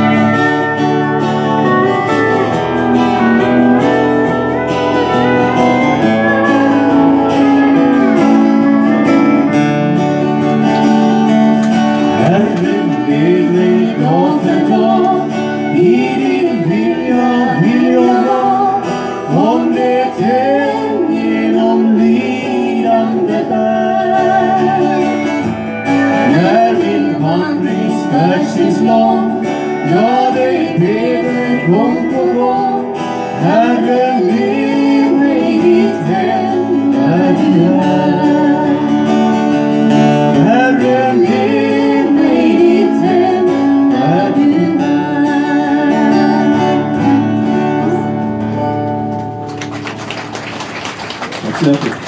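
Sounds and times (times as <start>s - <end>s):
person singing: 0.0s - 48.3s
country song with acoustic guitars: 0.0s - 52.0s
audience applause: 49.0s - 52.0s.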